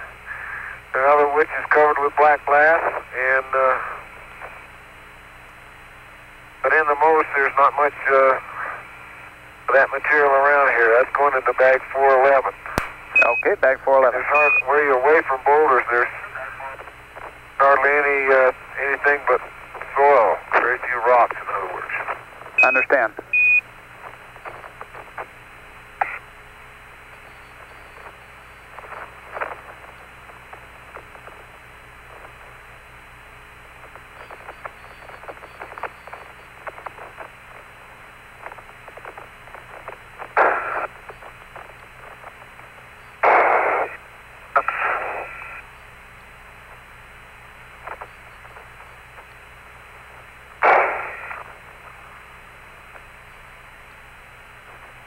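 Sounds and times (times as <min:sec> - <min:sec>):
radio noise bursts: 0:00.0 - 0:05.3, 0:06.3 - 0:55.0
radio hiss with low hum: 0:00.0 - 0:55.0
short high beep: 0:13.2 - 0:13.4.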